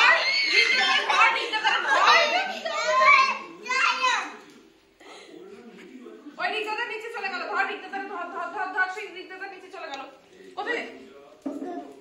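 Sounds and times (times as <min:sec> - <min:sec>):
children talking and calling out: 0:00.0 - 0:04.5.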